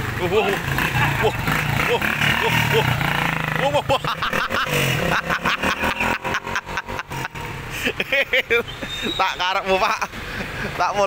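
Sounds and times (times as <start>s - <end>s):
motorcycle engine pulling away: 0.0s - 7.6s.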